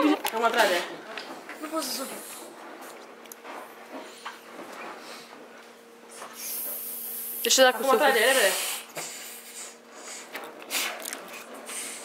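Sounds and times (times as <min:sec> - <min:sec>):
breaths into balloon: 0:08.3 - 0:11.1, 0:11.7 - 0:12.0.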